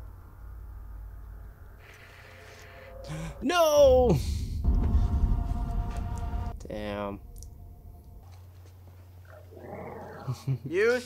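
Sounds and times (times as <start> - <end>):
steady low hum: 0.0 - 11.0
faint animal-like growl: 9.2 - 10.6.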